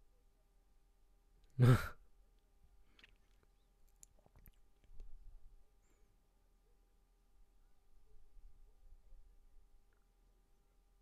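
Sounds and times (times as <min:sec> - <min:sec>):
man laughing breathily: 0:01.6 - 0:02.0.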